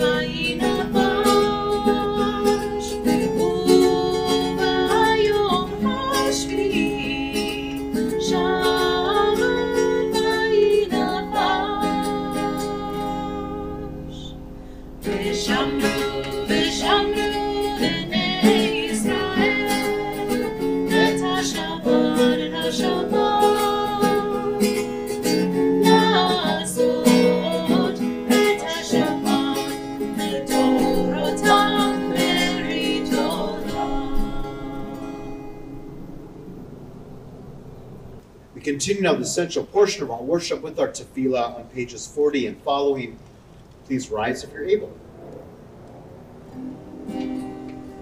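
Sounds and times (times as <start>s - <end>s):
woman singing: 0.0s - 14.4s, 15.0s - 35.6s
acoustic guitar strumming: 0.0s - 40.6s, 45.0s - 48.0s.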